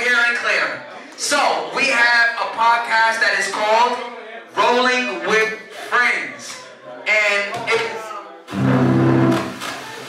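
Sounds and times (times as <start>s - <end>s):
low held musical note: 8.5s - 9.5s.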